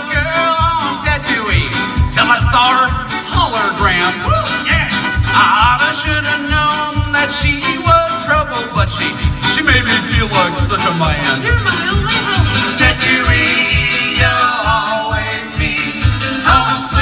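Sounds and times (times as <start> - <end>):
strummed acoustic guitar: 0.0 - 17.0
sung vocals: 0.0 - 17.0
steady bass beat: 0.1 - 17.0.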